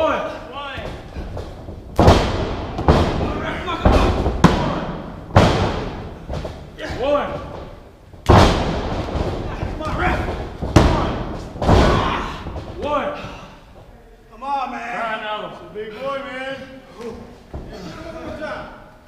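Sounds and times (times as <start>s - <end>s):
thuds on wrestling mat: 0.8s - 12.9s
people shouting: 3.1s - 5.1s, 9.5s - 13.5s.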